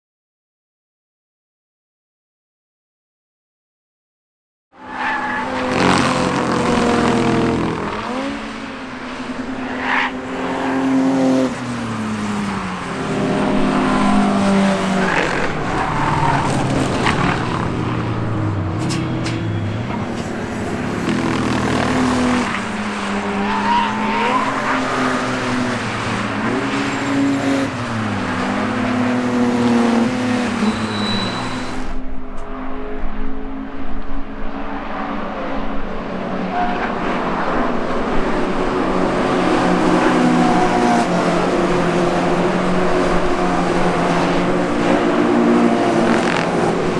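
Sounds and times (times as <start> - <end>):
racing car engines accelerating: 5.1 - 31.9, 34.8 - 46.9.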